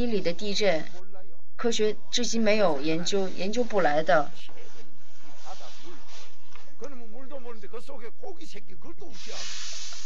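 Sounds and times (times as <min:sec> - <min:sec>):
man's voice: 0:05.4 - 0:09.6
steady hiss: 0:09.1 - 0:10.0.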